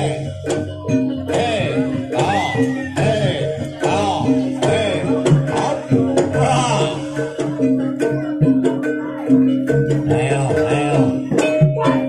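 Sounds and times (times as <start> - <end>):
pitched percussion notes: 0.0 - 12.0.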